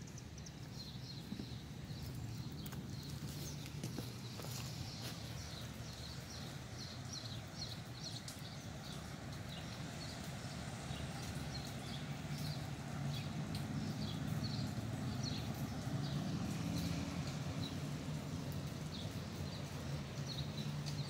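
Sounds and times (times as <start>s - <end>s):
small birds chirping: 0.0s - 21.0s.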